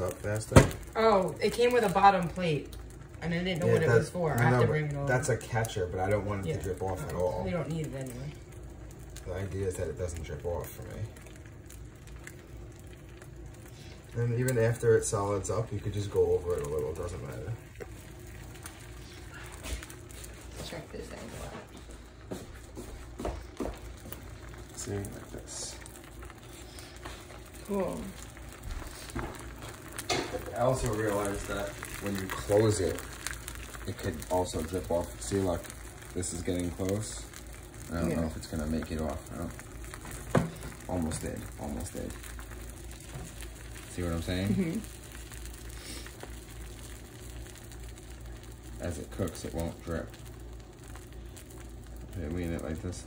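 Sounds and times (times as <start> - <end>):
egg sizzling on a grill: 0.0 - 53.0.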